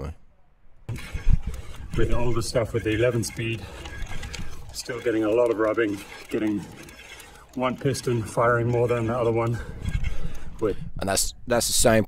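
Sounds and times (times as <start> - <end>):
wind buffeting microphone: 9.0 - 11.9.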